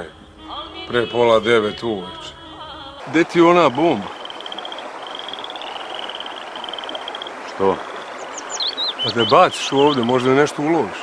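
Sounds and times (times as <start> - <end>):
stream flowing: 0.0 - 11.0.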